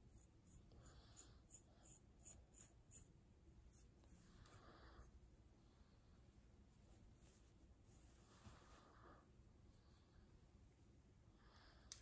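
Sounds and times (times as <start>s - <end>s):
fingernails scratching hair: 0.0s - 4.1s.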